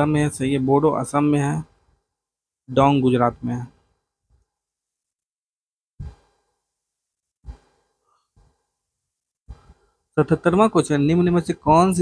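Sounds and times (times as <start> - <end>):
man breathing: 9.5 - 10.1.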